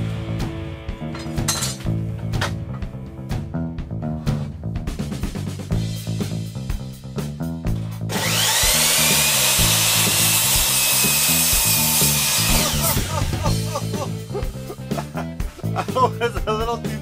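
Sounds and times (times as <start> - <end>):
background music: 0.0 - 17.0
miter saw motor whine: 8.1 - 13.7.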